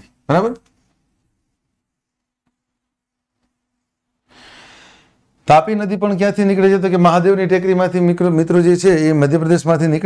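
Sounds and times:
man speaking: 0:00.0 - 0:00.7, 0:05.4 - 0:10.0
man breathing: 0:04.2 - 0:05.3.

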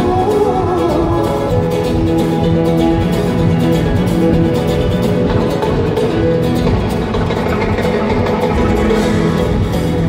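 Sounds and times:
drums and congas: 0:00.0 - 0:10.0
strummed acoustic guitars: 0:01.4 - 0:10.0.

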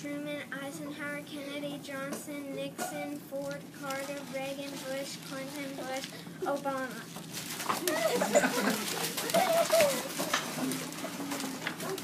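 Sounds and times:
children stirring in seats: 0:02.0 - 0:12.0
children laughing and giggling: 0:07.8 - 0:12.0.

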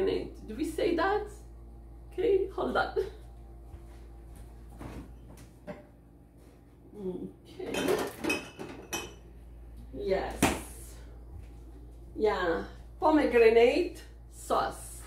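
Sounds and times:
dishes and cutlery clinking: 0:07.6 - 0:09.2.

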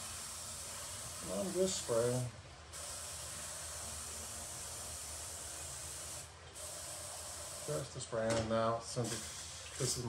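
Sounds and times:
airbrush hissing: 0:00.0 - 0:07.8, 0:09.0 - 0:10.0.

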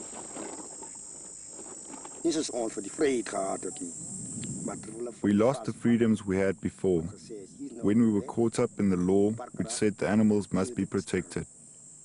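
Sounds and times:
high-pitched insect drone: 0:00.0 - 0:12.0
man speaking: 0:02.3 - 0:04.0, 0:04.6 - 0:11.5.

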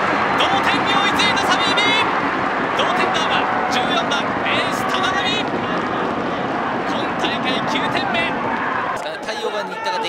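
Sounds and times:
high shouts: 0:00.0 - 0:10.0
spectators cheering: 0:00.0 - 0:10.0.

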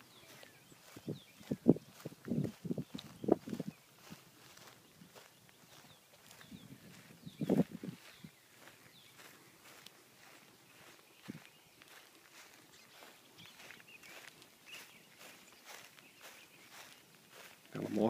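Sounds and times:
footsteps on grass: 0:00.0 - 0:18.0.

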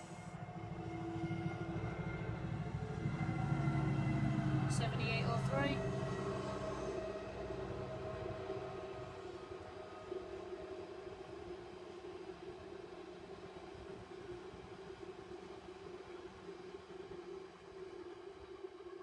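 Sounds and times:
freight train rolling past: 0:00.0 - 0:11.7.

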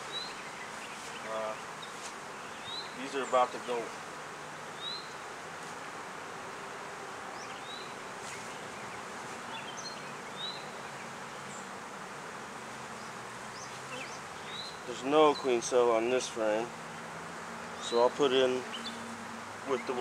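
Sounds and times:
bees buzzing: 0:00.0 - 0:20.0.

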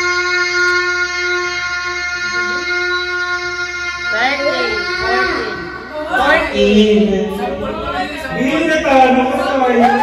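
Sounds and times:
child singing a long note: 0:00.0 - 0:07.6.

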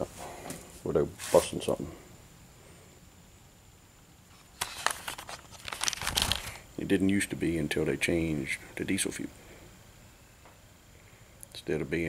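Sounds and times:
camera handling rustles and clicks: 0:04.3 - 0:06.5.

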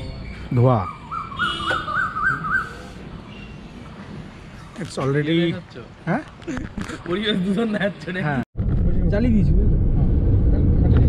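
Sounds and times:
bird whistling: 0:00.8 - 0:03.6.

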